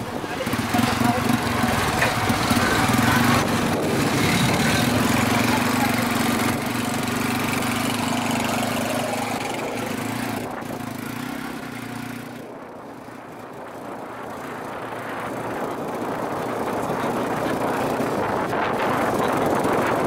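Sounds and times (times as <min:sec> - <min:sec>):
motorcycle engine running: 0:00.0 - 0:20.0.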